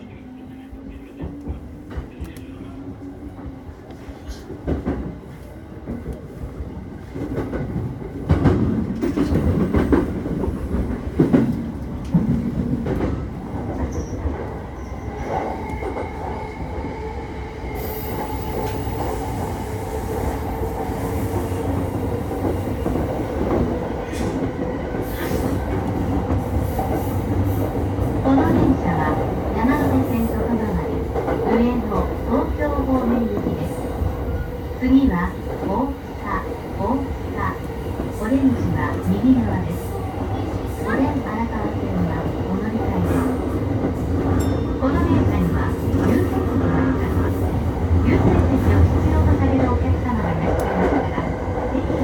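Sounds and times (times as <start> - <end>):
train wheels rumbling on rails: 0.2 - 52.0
train wheels squealing: 13.9 - 16.6.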